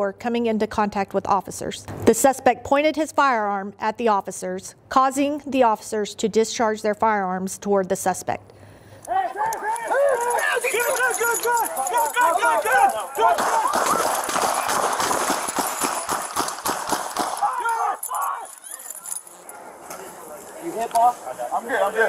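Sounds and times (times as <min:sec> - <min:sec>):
people shouting: 0:09.1 - 0:15.2, 0:16.7 - 0:19.0
running footsteps: 0:09.2 - 0:20.4.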